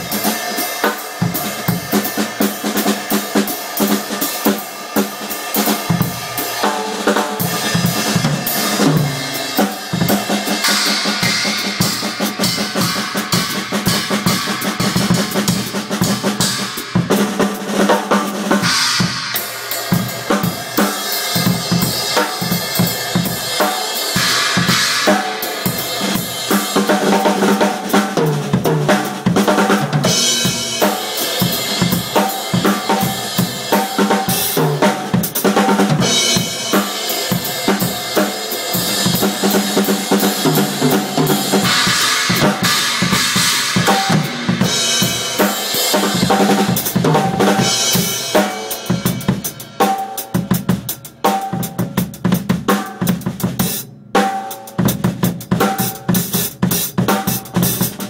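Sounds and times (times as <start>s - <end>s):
drum kit groove: 0.0s - 58.0s.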